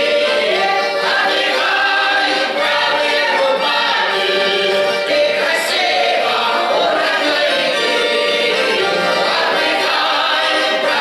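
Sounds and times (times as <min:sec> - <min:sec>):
women's folk choir singing: 0:00.0 - 0:11.0.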